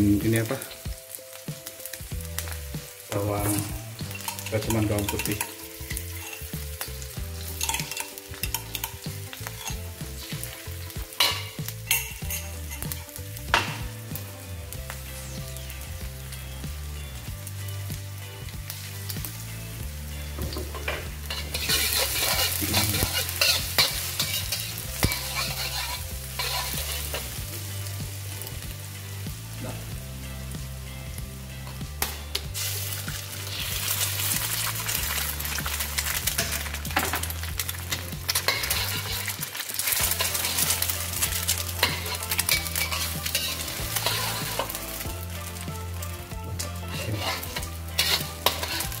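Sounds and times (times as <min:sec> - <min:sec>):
onion and garlic sizzling in oil: 0:00.0 - 0:49.0
metal spatula scraping wok: 0:03.4 - 0:13.7, 0:20.5 - 0:27.5, 0:32.6 - 0:45.6, 0:46.8 - 0:49.0.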